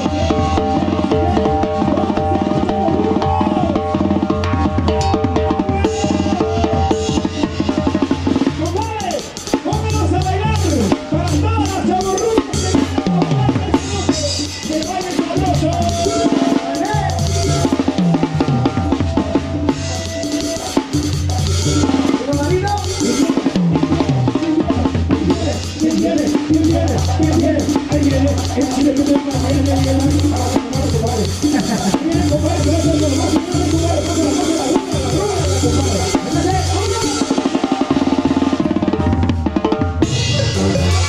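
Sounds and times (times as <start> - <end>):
brass band playing: 0.0 - 41.0
snare drum rolls: 0.0 - 41.0
low bass pattern: 16.8 - 37.2, 39.9 - 41.0.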